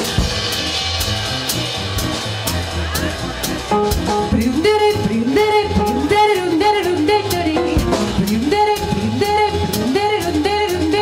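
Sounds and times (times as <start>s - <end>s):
drum cymbals keeping time: 0.0s - 11.0s
swinging big band: 0.0s - 11.0s
upright bass: 0.0s - 11.0s.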